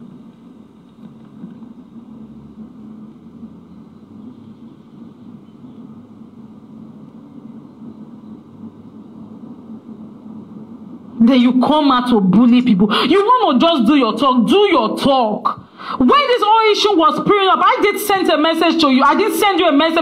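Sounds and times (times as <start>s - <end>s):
low steady background rumble: 0.0s - 20.0s.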